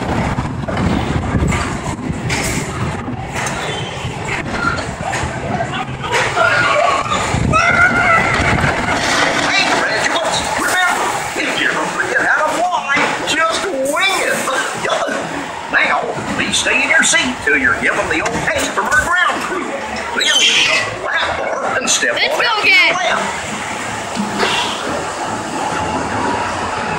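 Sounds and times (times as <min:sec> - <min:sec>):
wind buffeting microphone: 0:00.0 - 0:11.4
roller coaster rumbling on track: 0:00.0 - 0:26.9
riders' voices: 0:03.5 - 0:23.6.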